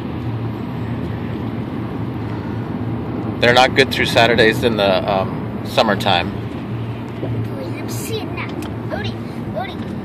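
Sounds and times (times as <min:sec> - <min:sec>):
constant low hum: 0:00.0 - 0:10.0
road and engine noise inside car: 0:00.0 - 0:10.0.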